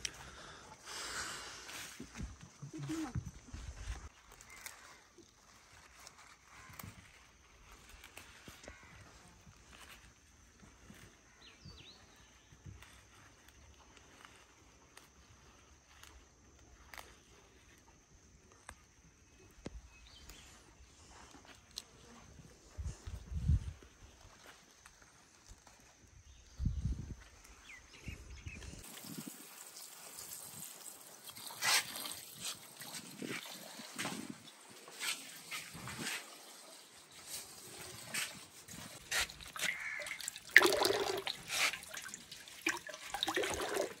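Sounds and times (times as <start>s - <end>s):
water splashing in metal basin: 39.0s - 44.0s.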